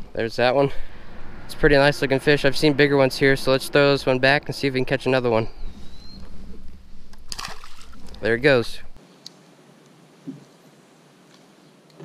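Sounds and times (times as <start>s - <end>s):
low steady rumble: 0.0s - 9.0s
fish splashing into water: 7.3s - 8.2s.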